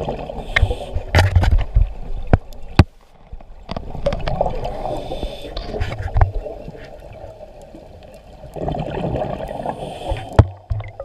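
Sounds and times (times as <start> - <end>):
underwater bubbles gurgling: 0.0 - 11.0.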